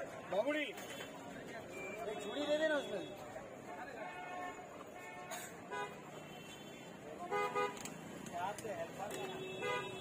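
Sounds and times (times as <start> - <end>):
vehicle horns honking: 4.0 - 7.8, 9.1 - 10.0.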